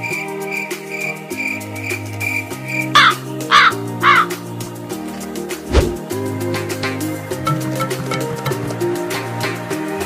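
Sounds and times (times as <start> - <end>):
background music with held notes: 0.0 - 10.0
crow cawing: 2.9 - 4.5.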